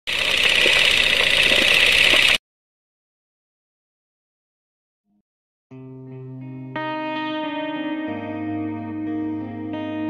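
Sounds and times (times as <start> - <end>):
film projector whirring: 0.1 - 2.4.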